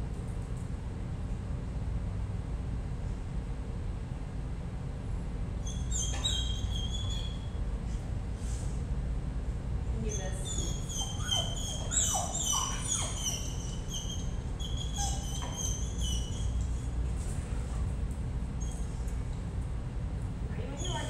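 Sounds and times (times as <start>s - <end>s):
dog whining: 5.6s - 7.6s, 10.1s - 17.0s.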